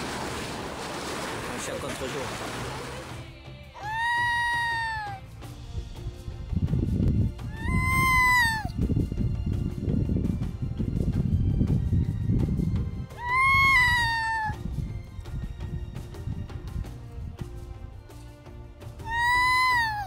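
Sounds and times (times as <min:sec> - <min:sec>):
seal pup crying: 0:03.8 - 0:05.2, 0:07.5 - 0:08.7, 0:13.2 - 0:14.6, 0:19.0 - 0:20.0.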